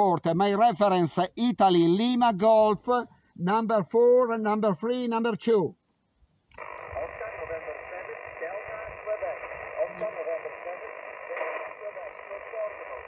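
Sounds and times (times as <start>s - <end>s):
radio hiss: 6.5s - 13.0s
speech over radio speaker: 6.6s - 13.0s.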